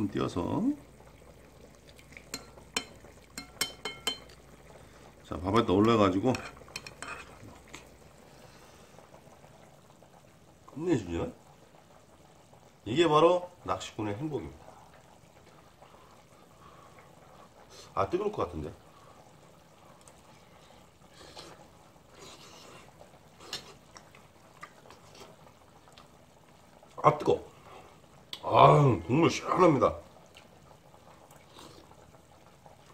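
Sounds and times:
background hiss: 0:00.0 - 0:32.9
spoon clicking in a bowl: 0:02.3 - 0:04.4
person breathing: 0:08.2 - 0:09.1
soft slurps: 0:20.0 - 0:26.1.

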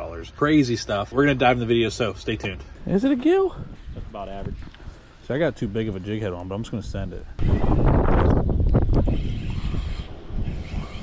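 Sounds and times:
wind buffeting microphone: 0:02.7 - 0:11.0.

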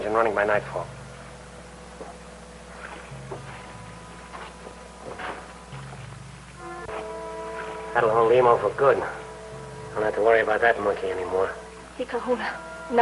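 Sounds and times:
dramatic background score: 0:00.0 - 0:13.0.

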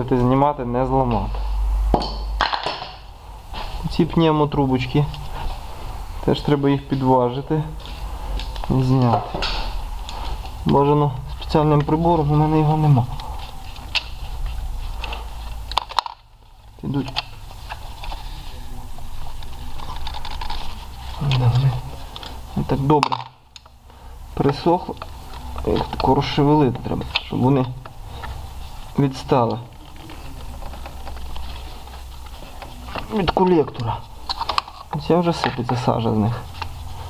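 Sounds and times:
steady low hum: 0:00.0 - 0:37.0
plastic lines clicking and scraping: 0:19.2 - 0:23.8, 0:24.4 - 0:37.0.

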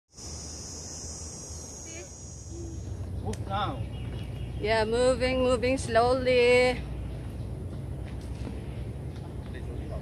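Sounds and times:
insects buzzing: 0:00.1 - 0:05.8.

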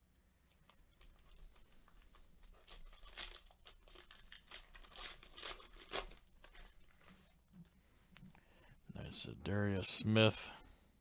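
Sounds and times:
foil wrapper tearing and crinkling: 0:00.9 - 0:07.3.

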